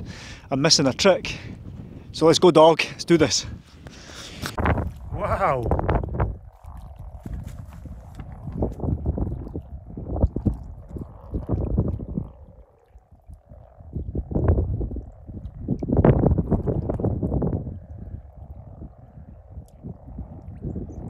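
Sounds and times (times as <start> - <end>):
frogs croaking: 0.0 - 21.0.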